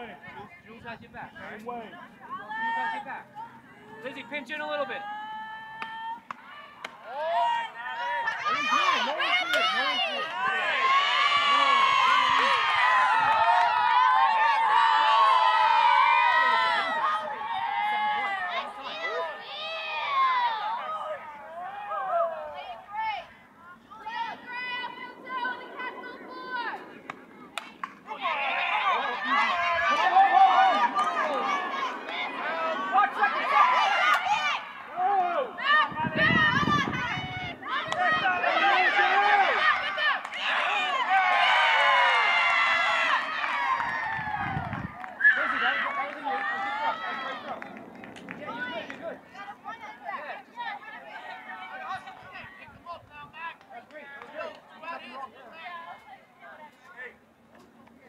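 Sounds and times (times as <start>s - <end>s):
crowd shouting and cheering: 2.0s - 56.3s
low rumbles: 22.7s - 38.4s, 46.2s - 50.7s.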